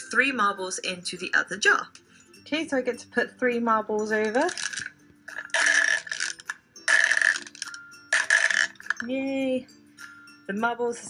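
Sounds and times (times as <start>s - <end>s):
marbles clinking into plastic cup: 4.2s - 9.1s.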